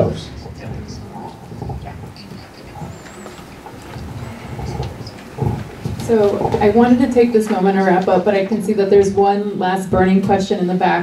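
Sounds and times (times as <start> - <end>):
indistinct rumbling and shuffling: 0.0 - 10.4.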